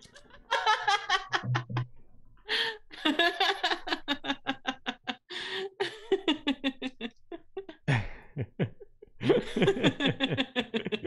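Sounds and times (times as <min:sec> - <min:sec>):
person laughing: 0:00.5 - 0:01.9, 0:02.5 - 0:11.0.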